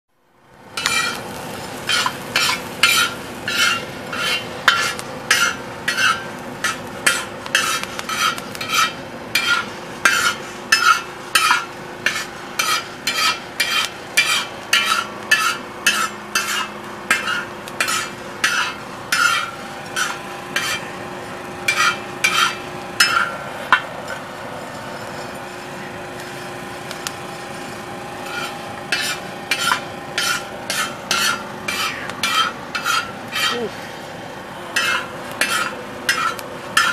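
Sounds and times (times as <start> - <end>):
spoon scraping metal pan: 0.8 - 1.2, 1.9 - 20.9, 21.7 - 23.3, 28.3 - 33.7, 34.8 - 36.9.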